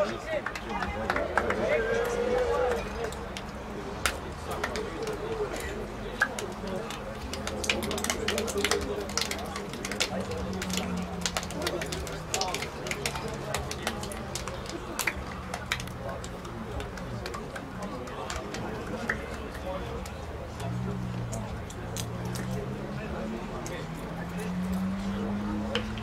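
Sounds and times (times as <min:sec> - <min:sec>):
distant voices: 0:00.0 - 0:26.0
hands slapping together: 0:03.0 - 0:22.6.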